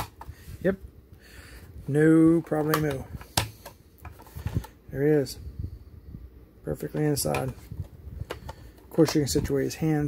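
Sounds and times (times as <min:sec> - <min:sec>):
hard plastic clicks and taps: 0:02.4 - 0:04.3.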